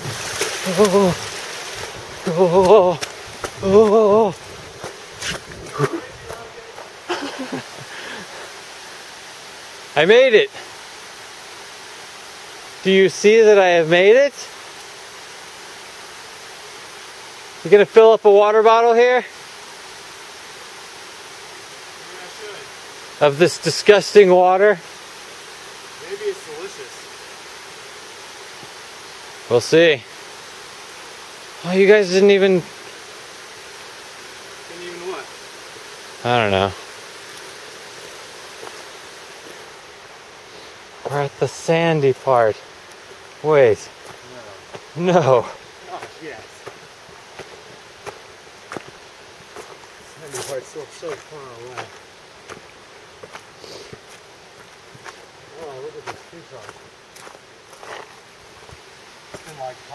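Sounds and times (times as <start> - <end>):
mountain creek rushing: 0.0 - 59.9
stream flowing over rocks: 0.0 - 59.9
person speaking: 0.6 - 1.2, 2.2 - 4.5, 5.6 - 8.2.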